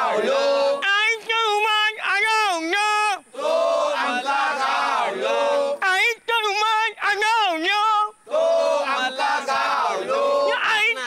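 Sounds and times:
men chanting in unison: 0.0 - 5.8, 6.9 - 11.0.

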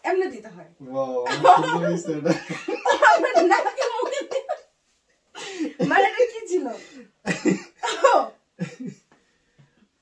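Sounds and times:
woman exclaiming: 7.8 - 8.3.

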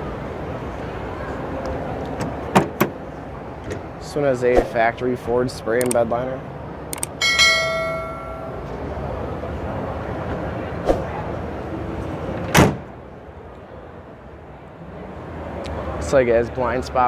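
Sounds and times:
busy exhibition hall noise: 0.0 - 17.0
bell-like chime: 7.2 - 8.7.

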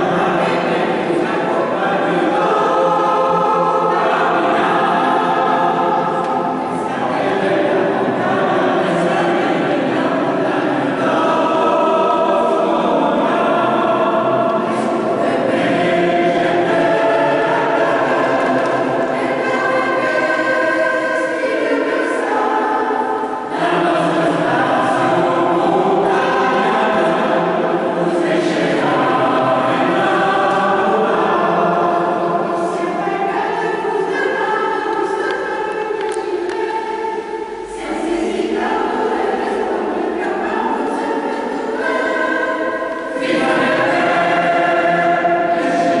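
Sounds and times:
mixed choir singing: 0.0 - 46.0.

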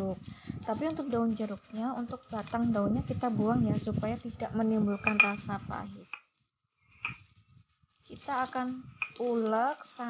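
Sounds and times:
stone pestle knocking in mortar: 5.0 - 5.4.

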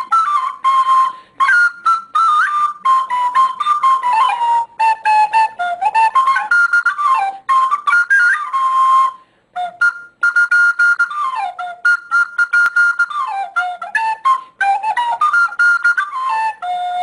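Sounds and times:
recorder melody: 0.0 - 17.0.

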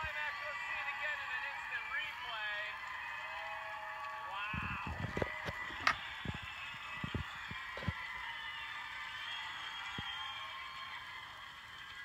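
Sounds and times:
children cheering and applauding: 0.0 - 12.0.

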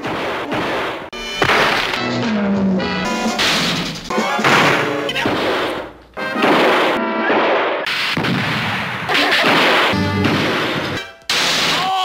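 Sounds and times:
cartoon crash sound effects: 0.7 - 2.4, 3.1 - 5.8, 6.4 - 12.0
cartoon music: 1.2 - 5.4, 9.1 - 11.2.

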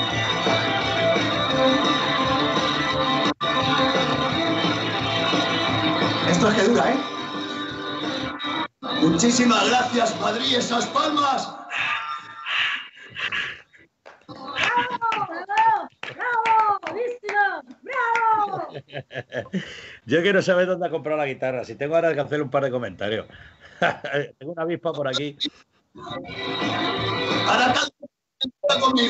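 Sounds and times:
hand claps: 14.0 - 18.5.

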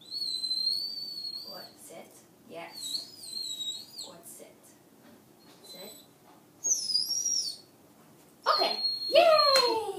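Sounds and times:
puppy whining: 0.0 - 1.8, 2.7 - 4.2, 5.4 - 7.7, 8.5 - 9.9.

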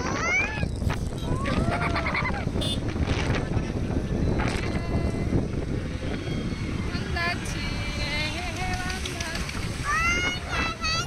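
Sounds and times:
vehicle rumbling: 0.0 - 11.0.

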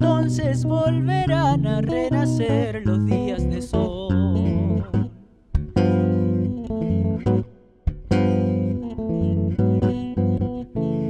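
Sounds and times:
electric bass plucked chords: 0.0 - 11.0.

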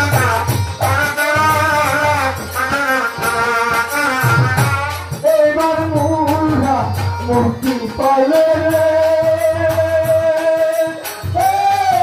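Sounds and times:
drum beats: 0.0 - 12.0
small percussion: 0.0 - 12.0
wavering melody: 0.0 - 12.0.

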